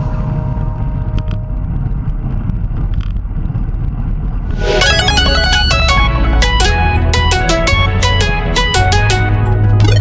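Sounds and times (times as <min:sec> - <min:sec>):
wind and road noise: 0:00.0 - 0:10.0
music track: 0:04.5 - 0:10.0.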